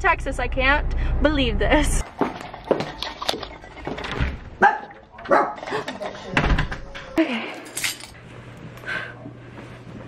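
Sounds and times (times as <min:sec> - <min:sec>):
small dog barking: 0:04.6 - 0:05.6.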